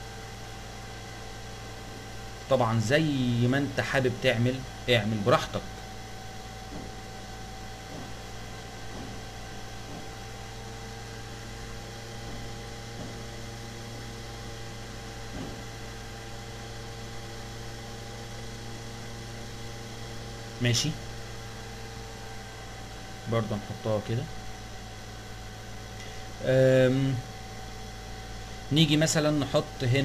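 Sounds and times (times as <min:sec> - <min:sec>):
electrical hum and hiss: 0:00.0 - 0:30.0.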